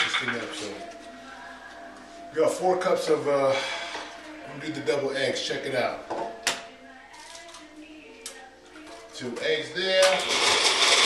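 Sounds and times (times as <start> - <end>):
faint kitchen background: 0.0 - 11.0.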